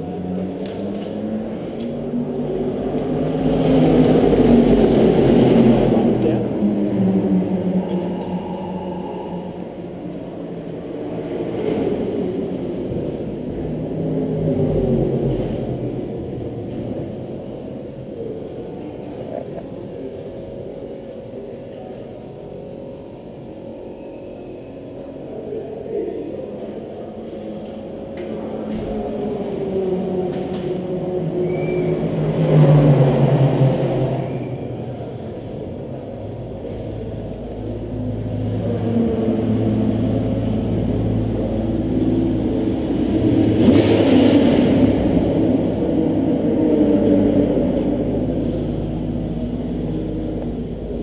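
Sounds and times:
racing car engines echoing: 0:00.0 - 0:51.0.

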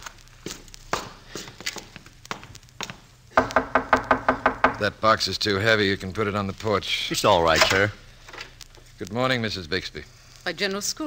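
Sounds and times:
footsteps: 0:00.0 - 0:04.1
knocking on a door: 0:03.4 - 0:04.9.

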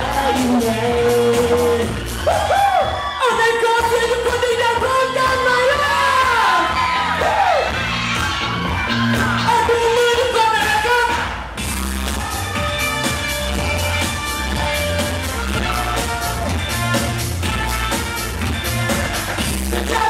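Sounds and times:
man singing into a microphone: 0:00.0 - 0:01.9, 0:19.7 - 0:20.0
amplified pop backing music: 0:00.0 - 0:20.0.

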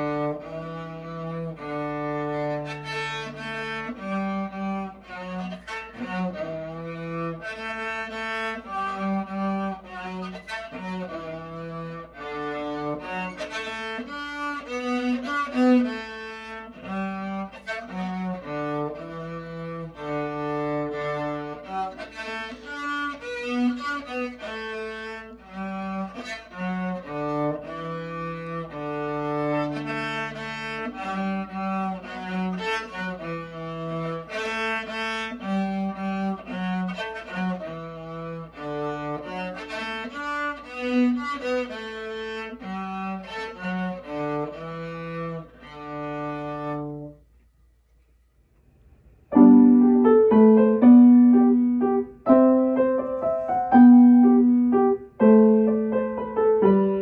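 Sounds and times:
solo cello melody: 0:00.0 - 0:47.5, 0:49.2 - 0:57.0.

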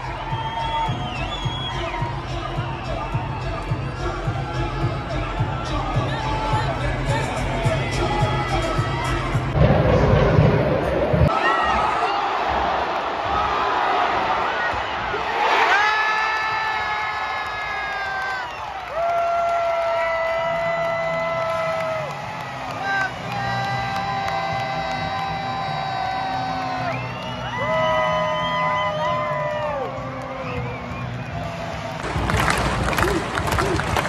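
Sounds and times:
celebration music over loudspeakers: 0:00.0 - 0:12.1, 0:18.1 - 0:34.0
crowd cheering: 0:00.0 - 0:34.0.

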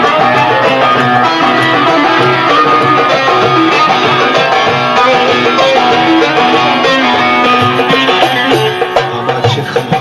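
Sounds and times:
plucked string instrument melody: 0:00.0 - 0:10.0.

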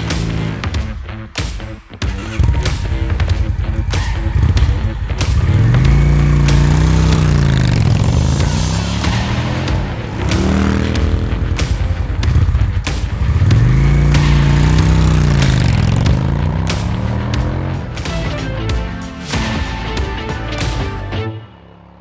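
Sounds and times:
motorcycle engine revving: 0:00.0 - 0:01.3, 0:02.0 - 0:18.5.

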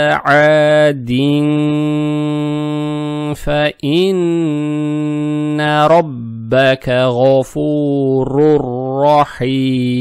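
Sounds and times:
man reciting in melodic chant: 0:00.0 - 0:10.0.

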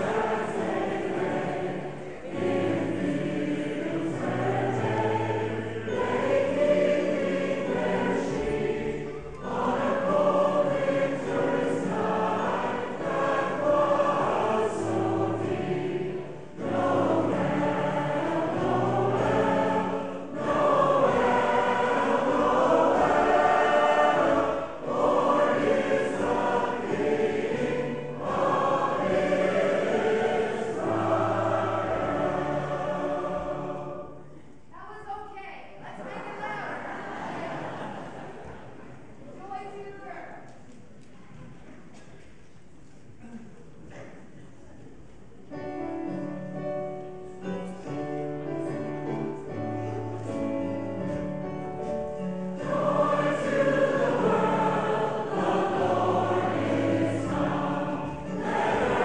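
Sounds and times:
choir singing a carol: 0:00.0 - 0:34.7, 0:36.0 - 0:39.2, 0:45.4 - 0:59.0.

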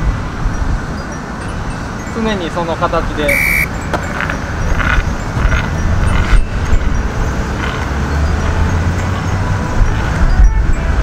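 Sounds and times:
wind buffeting microphone: 0:02.9 - 0:11.0.

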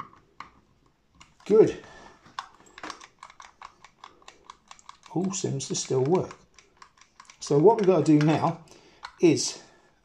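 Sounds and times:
plastic microphone clicks and knocks: 0:04.8 - 0:09.2.

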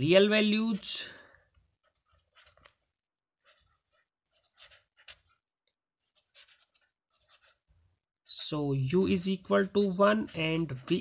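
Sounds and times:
felt-tip pen scratching on paper: 0:00.5 - 0:11.0.

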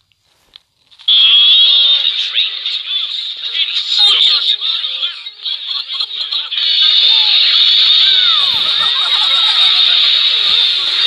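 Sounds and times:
cartoon music: 0:05.9 - 0:11.0.

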